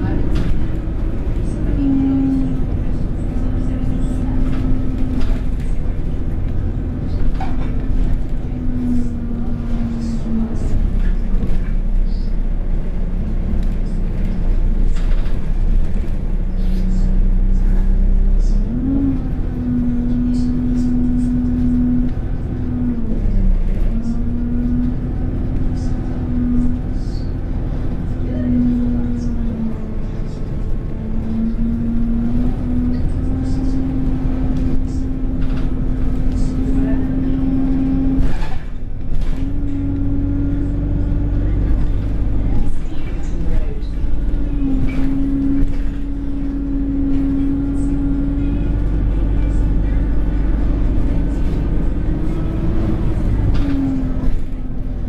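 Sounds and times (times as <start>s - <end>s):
bus engine drone: 0.0s - 55.0s.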